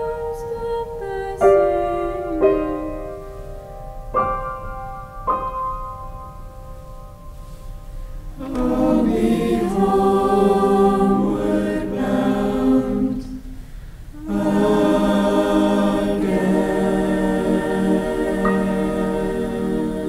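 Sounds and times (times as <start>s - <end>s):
choir singing: 0.0s - 3.2s, 8.4s - 20.0s.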